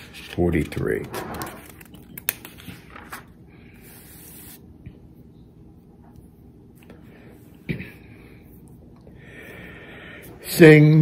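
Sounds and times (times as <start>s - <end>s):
hymnal pages turning: 0.0s - 3.4s.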